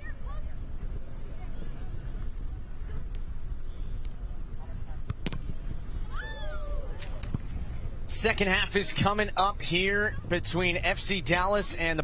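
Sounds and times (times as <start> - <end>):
wind rumble: 0.0 - 11.4.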